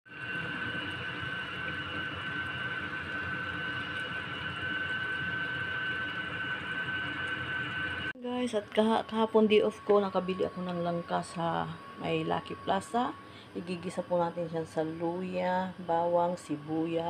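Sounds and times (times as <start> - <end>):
small fan motor whirring: 0.1 - 17.0.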